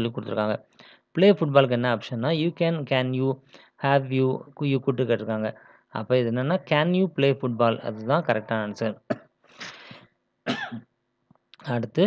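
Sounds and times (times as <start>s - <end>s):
man speaking: 0.0s - 9.2s, 11.6s - 12.0s
man clearing his throat: 8.3s - 9.9s, 10.5s - 10.9s.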